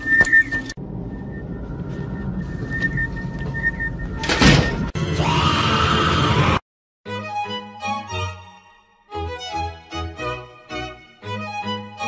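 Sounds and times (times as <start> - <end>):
low rumble: 0.8 - 4.4.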